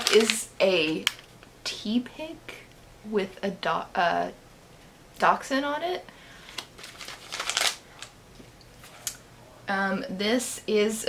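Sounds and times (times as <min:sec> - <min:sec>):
paper packaging crinkling: 0:00.0 - 0:01.3, 0:06.5 - 0:08.2.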